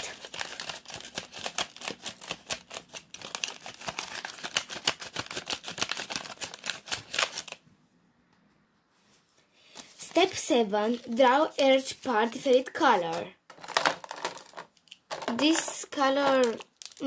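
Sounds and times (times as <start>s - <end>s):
paper crackling and crinkling: 0.0s - 7.6s, 9.8s - 17.0s.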